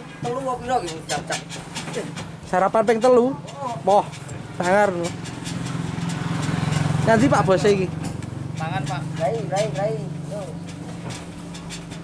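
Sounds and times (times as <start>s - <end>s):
engine running with low hum: 0.0s - 12.0s.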